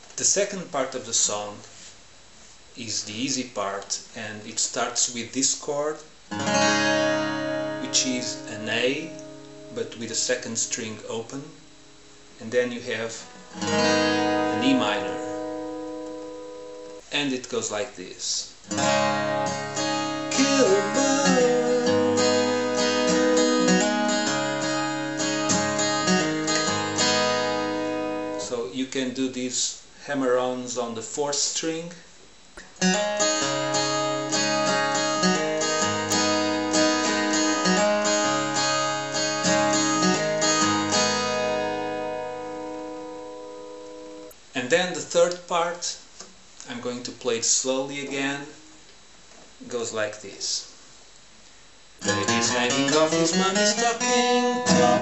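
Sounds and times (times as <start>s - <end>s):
acoustic guitar chord ringing: 6.3s - 17.0s, 18.7s - 28.5s, 32.8s - 44.4s, 52.0s - 55.0s.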